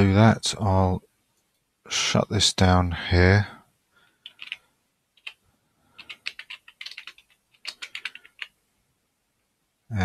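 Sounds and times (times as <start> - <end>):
keyboard typing: 4.1 - 4.6, 5.2 - 8.6.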